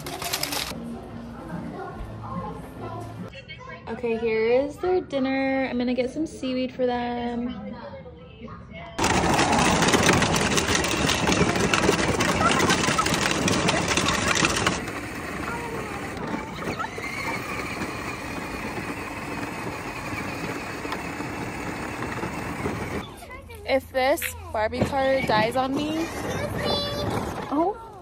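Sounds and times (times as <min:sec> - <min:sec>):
electric motor whining: 0:09.0 - 0:23.1
plastic wheels rumbling on asphalt: 0:09.0 - 0:23.2, 0:24.8 - 0:28.0.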